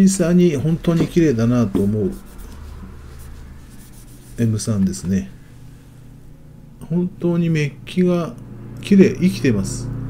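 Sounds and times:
low steady background hum: 0:00.0 - 0:10.0
fingers rubbing on camera: 0:01.0 - 0:05.0.

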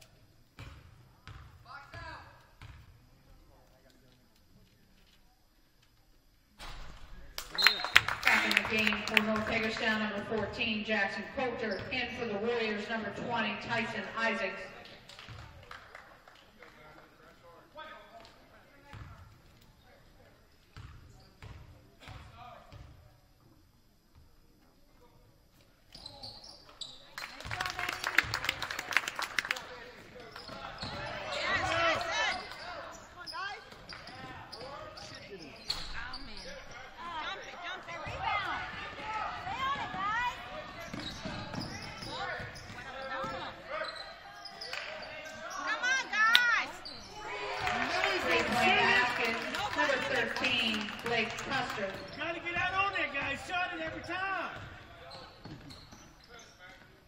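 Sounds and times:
basketball bouncing on hardwood floor: 0:00.6 - 0:01.5, 0:02.6 - 0:02.8
sneakers squeaking on court: 0:02.6 - 0:02.9, 0:11.4 - 0:12.7, 0:20.8 - 0:22.9, 0:30.2 - 0:46.0, 0:46.7 - 0:47.3, 0:50.0 - 0:57.0
players and spectators shouting: 0:30.6 - 0:33.3, 0:37.0 - 0:51.2.

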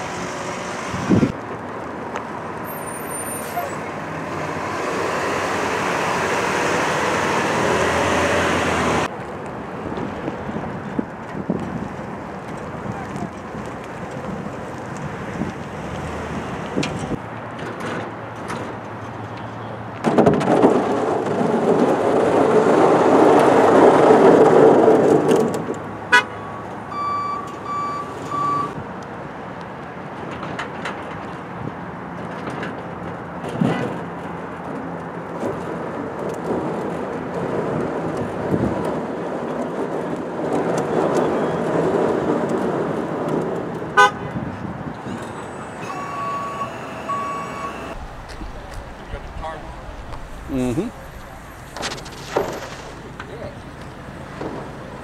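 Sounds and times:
short high beeps: 0:26.4 - 0:28.8, 0:45.6 - 0:48.0
truck engine running: 0:45.2 - 0:55.0.

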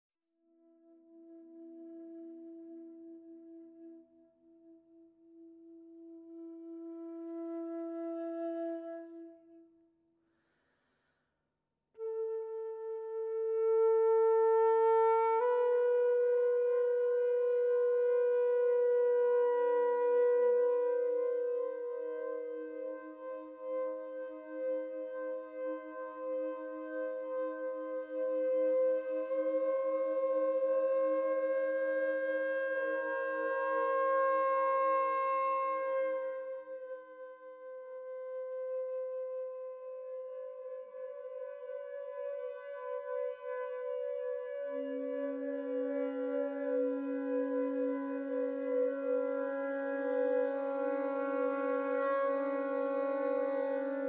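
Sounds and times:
alto flute held notes: 0:12.0 - 0:54.0.

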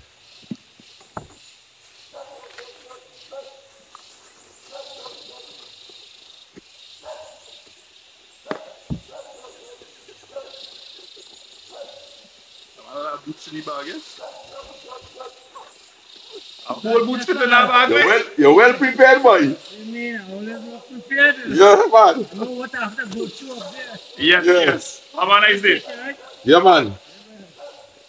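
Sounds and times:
dog barking: 0:02.1 - 0:03.8, 0:04.7 - 0:05.8, 0:07.0 - 0:07.5, 0:08.4 - 0:10.7, 0:11.7 - 0:12.3, 0:14.1 - 0:16.4, 0:25.8 - 0:26.6, 0:27.5 - 0:28.0
quiet talk: 0:09.4 - 0:27.9.

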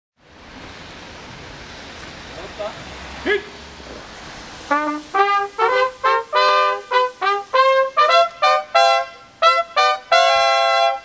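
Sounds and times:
rushing outdoor background noise: 0:00.2 - 0:11.0.

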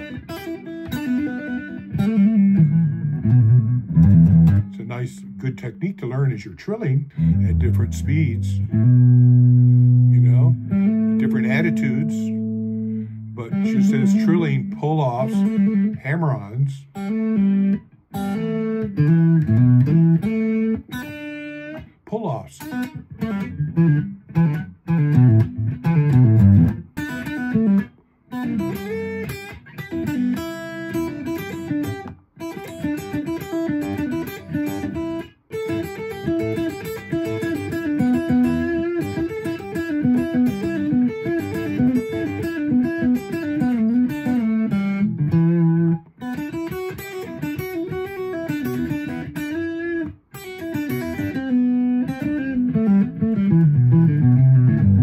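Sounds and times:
electric guitar blues phrases: 0:00.0 - 0:55.0.

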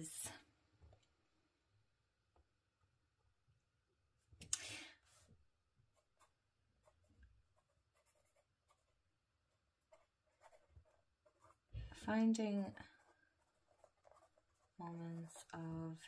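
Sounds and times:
pen scratching on paper: 0:05.9 - 0:09.0, 0:09.8 - 0:16.0.

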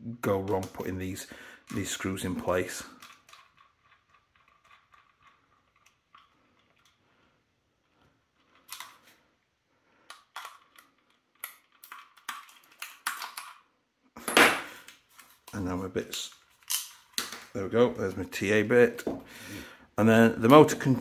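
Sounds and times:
plastic parts clicking: 0:02.6 - 0:07.0, 0:08.4 - 0:09.2, 0:10.0 - 0:13.7, 0:14.8 - 0:17.6.

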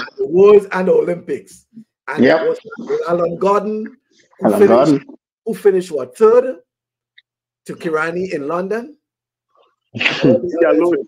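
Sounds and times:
man saying yeah: 0:04.5 - 0:05.0.

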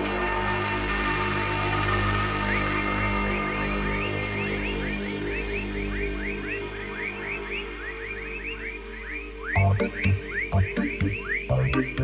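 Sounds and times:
rising electronic chirps: 0:09.5 - 0:12.0
steady low drone: 0:09.6 - 0:12.0.

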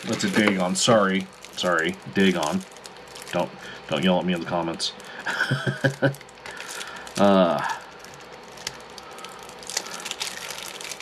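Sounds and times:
man chuckling: 0:05.2 - 0:06.2, 0:07.2 - 0:07.8.

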